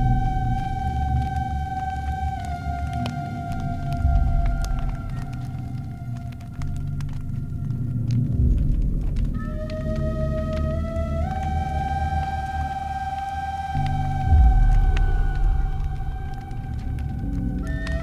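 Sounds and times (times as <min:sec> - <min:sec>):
low drone: 0:00.0 - 0:18.0.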